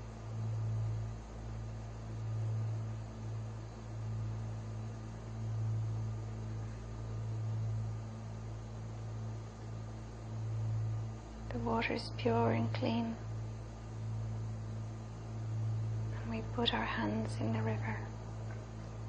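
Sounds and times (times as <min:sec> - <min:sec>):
faint hiss: 0:00.0 - 0:19.0
low steady hum: 0:00.0 - 0:19.0.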